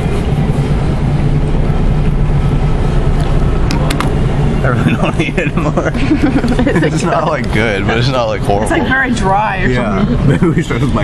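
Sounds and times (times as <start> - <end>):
loud low rumble: 0.0 - 11.0
low hum: 0.0 - 11.0.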